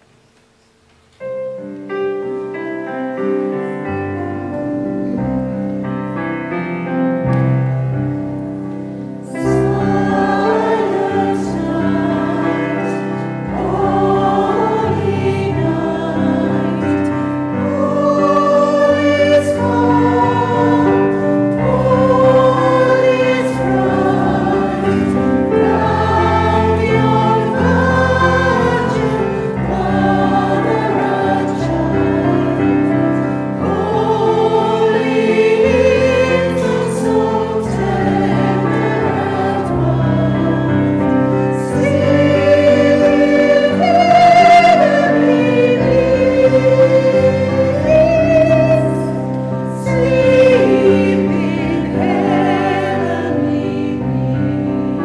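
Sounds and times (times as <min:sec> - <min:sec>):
mixed choir singing a carol: 0:03.6 - 0:55.0.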